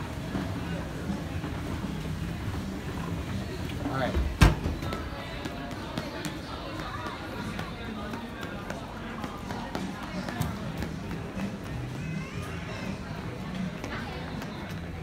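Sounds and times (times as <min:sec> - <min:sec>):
light footsteps on tile: 0:04.8 - 0:12.6.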